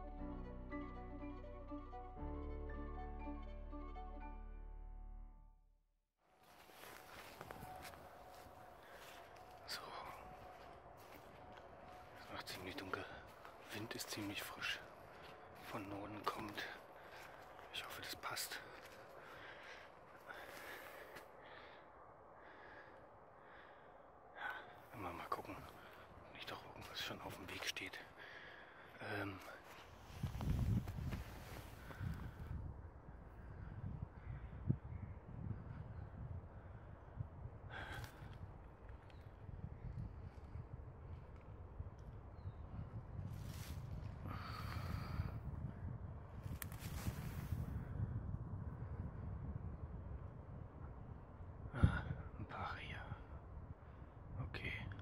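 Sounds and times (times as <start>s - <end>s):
man breathing softly: 8.3s - 10.6s, 16.6s - 26.2s, 28.0s - 32.6s, 37.6s - 38.4s, 43.5s - 45.7s, 51.7s - 54.1s
sniffs and breaths: 18.6s - 21.9s.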